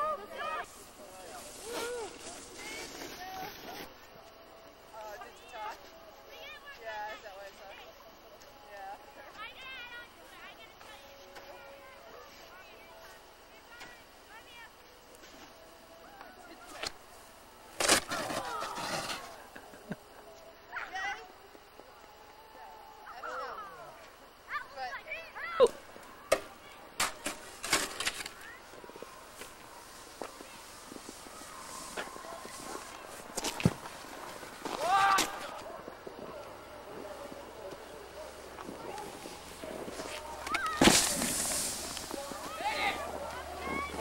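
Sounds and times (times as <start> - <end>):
voices calling out: 17.2 - 44.0.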